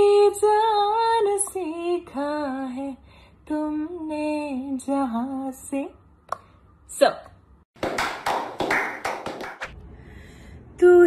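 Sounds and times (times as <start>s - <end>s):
people clapping: 7.8s - 9.8s.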